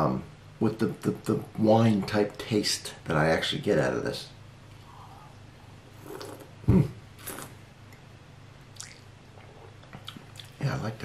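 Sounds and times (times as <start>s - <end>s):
lip smacks and swallowing: 8.7s - 9.1s, 9.8s - 10.6s.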